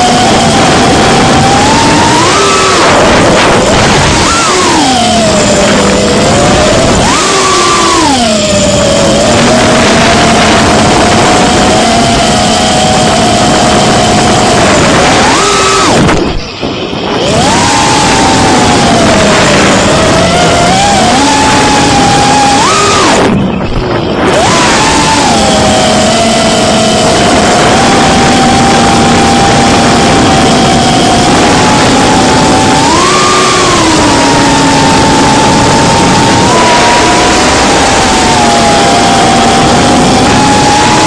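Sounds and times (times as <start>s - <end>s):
drone motors whining: 0.0s - 41.0s
rushing air: 0.0s - 41.0s.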